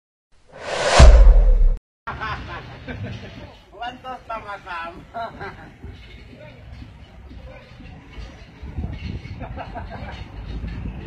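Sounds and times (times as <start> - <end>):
rising whoosh: 0.5 - 1.8
deep boom with low rumble: 0.6 - 1.8.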